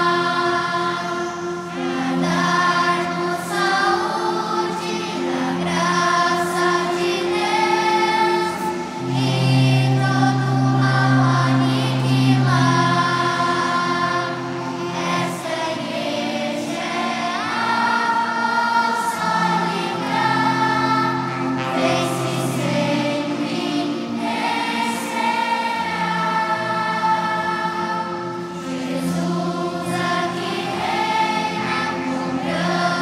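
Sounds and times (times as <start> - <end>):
choir singing a hymn: 0.0 - 33.0
guitar accompaniment: 0.0 - 33.0.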